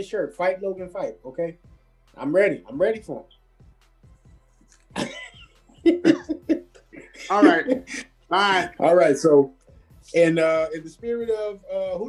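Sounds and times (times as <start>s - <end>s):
man laughing in short bursts: 5.0s - 8.0s.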